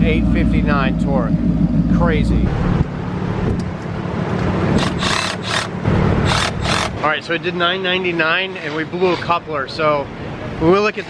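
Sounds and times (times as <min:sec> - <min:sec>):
car engine humming: 0:00.0 - 0:08.1.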